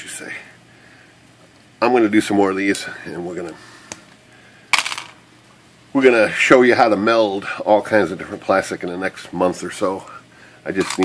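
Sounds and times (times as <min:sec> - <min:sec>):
plastic pieces clattering on table: 0:04.8 - 0:05.2.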